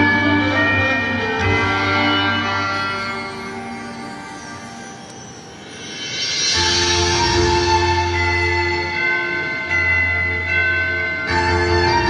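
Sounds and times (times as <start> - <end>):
music with bell-like chimes: 0.0 - 12.0.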